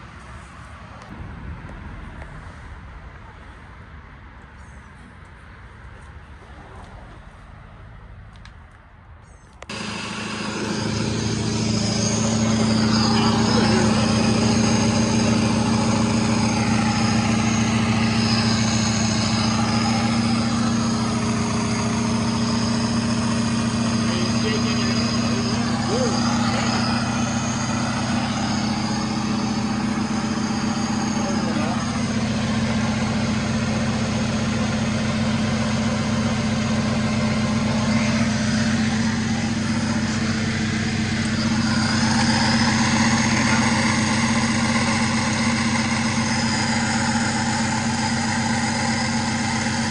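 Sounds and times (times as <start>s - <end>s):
car engine idling: 9.6s - 49.9s.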